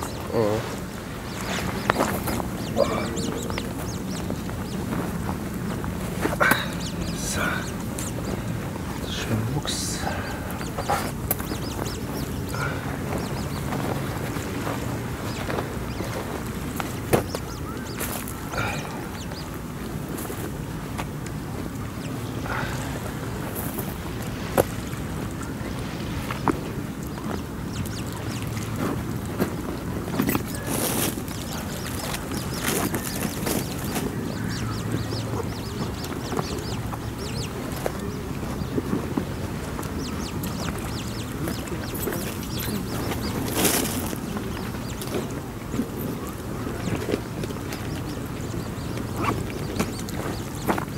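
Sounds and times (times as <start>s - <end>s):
coots calling: 0.0s - 25.7s, 26.3s - 50.9s
steady low rumble: 0.0s - 50.9s.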